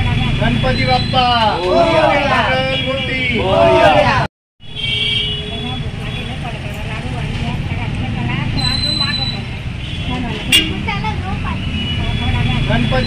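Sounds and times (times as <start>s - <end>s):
indistinct voices: 0.0s - 4.3s.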